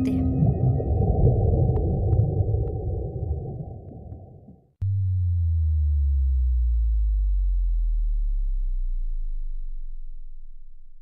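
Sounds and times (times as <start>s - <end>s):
low rumble: 0.0s - 11.0s
deep boom sinking in pitch: 4.8s - 11.0s.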